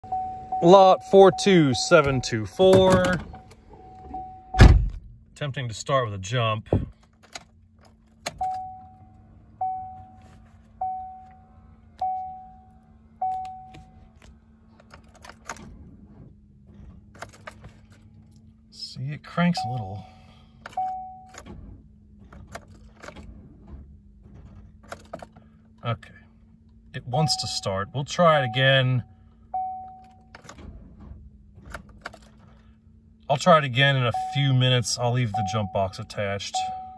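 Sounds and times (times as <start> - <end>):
car warning chime dinging: 0.0 - 4.8, 8.2 - 14.2, 18.8 - 21.6, 25.0 - 30.6, 33.3 - 36.9
car starter clicks: 20.5 - 25.8, 29.8 - 32.7.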